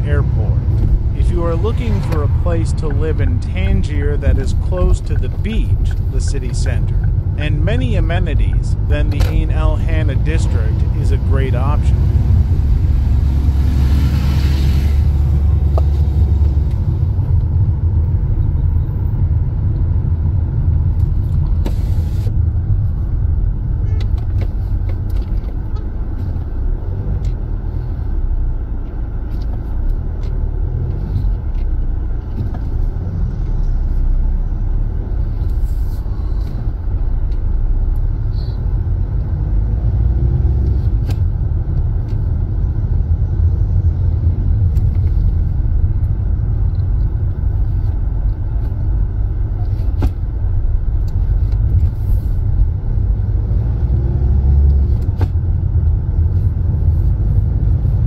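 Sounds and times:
car driving engine and tyre noise: 0.0s - 58.0s.

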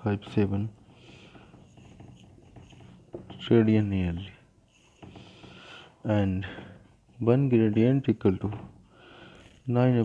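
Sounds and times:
marker writing on whiteboard: 0.2s - 10.0s.

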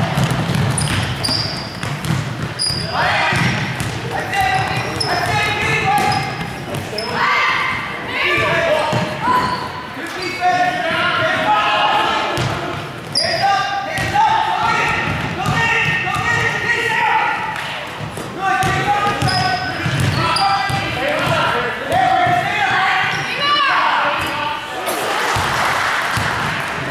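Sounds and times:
basketball bouncing on hardwood floor: 0.1s - 2.6s
voices shouting: 2.6s - 17.6s, 18.4s - 26.9s.

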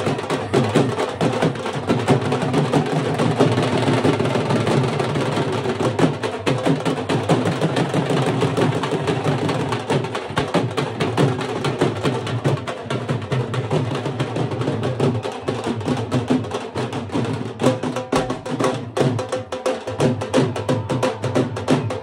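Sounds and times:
barrel drums beaten fast: 0.0s - 22.0s.

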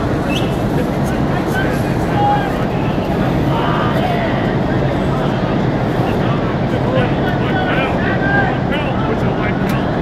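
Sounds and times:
low outdoor rumble: 0.0s - 10.0s
people talking: 0.0s - 10.0s.

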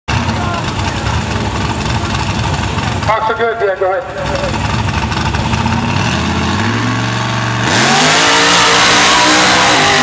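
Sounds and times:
off-road vehicle engine rumbling: 0.1s - 10.0s.

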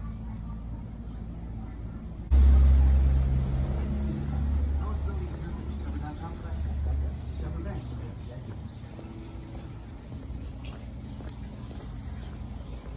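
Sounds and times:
faint voices: 0.0s - 12.9s
street traffic rumble: 0.0s - 12.9s.

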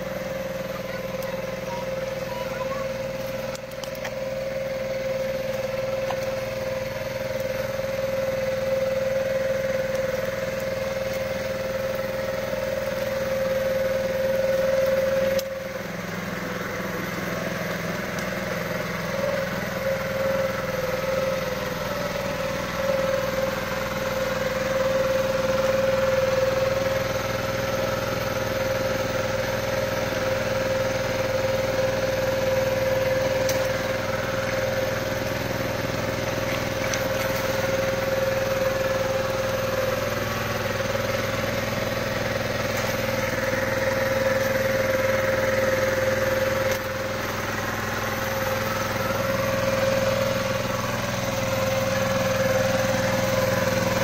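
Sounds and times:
small engine running: 0.0s - 54.0s.

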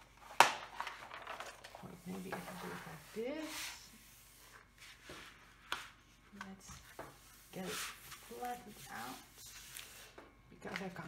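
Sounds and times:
hands rubbing plastic sheet: 7.2s - 10.9s.

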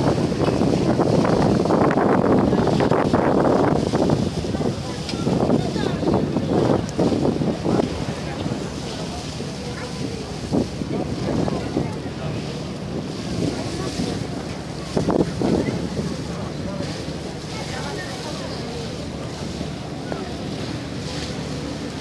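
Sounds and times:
people talking: 0.0s - 22.0s
water rushing along hull: 0.0s - 22.0s
wind on microphone: 0.0s - 22.0s.

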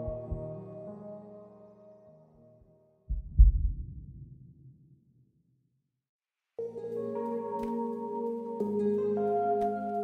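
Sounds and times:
deep bass thumps: 3.1s - 4.4s.

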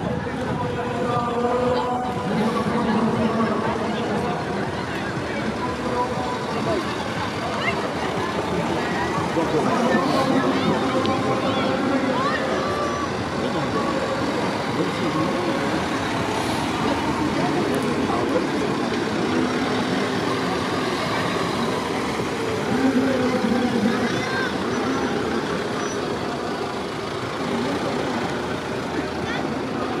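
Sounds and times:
chatter of spectators: 0.0s - 30.0s
van engine running: 0.0s - 30.0s.

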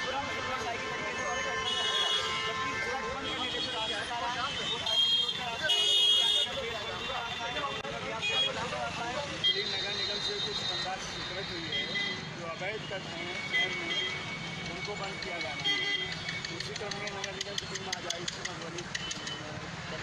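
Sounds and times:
vehicle horns: 0.0s - 16.7s
traffic noise: 0.0s - 20.0s.

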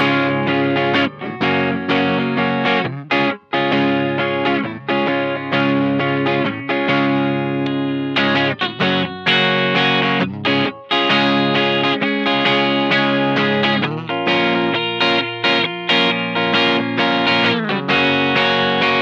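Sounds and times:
electric guitar strummed chords: 0.0s - 19.0s.

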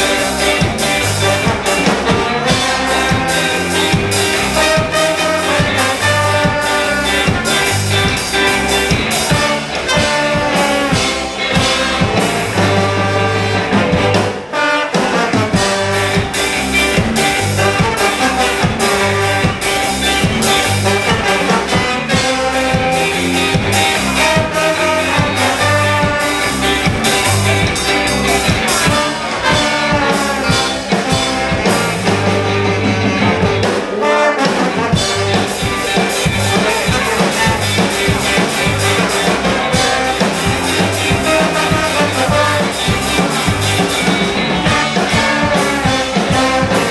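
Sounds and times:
bass guitar: 0.0s - 46.9s
electric guitars: 0.0s - 46.9s
horn section: 0.0s - 46.9s
saxophones and trumpet: 0.0s - 46.9s
steady drum beat: 0.0s - 46.9s.

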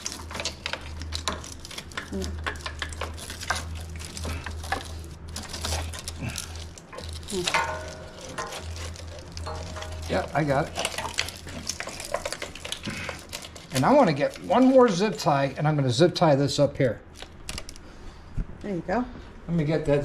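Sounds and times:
wires rustling and scraping: 0.0s - 19.4s
steady low hum: 0.0s - 20.0s.

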